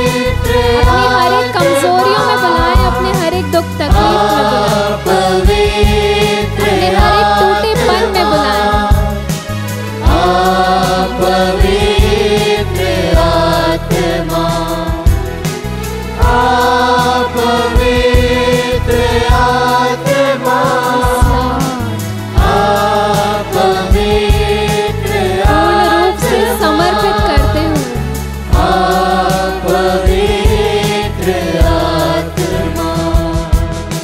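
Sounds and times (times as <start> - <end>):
instrumental backing: 0.0 - 34.0
voices singing worship song: 0.0 - 34.0.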